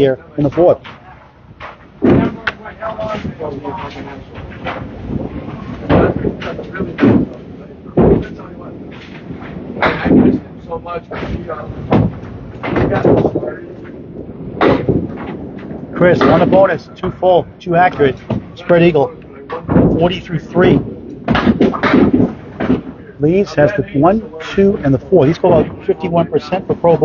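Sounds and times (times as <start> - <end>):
background chatter: 0.0 - 27.0
bowling balls knocking down pins: 21.2 - 23.0.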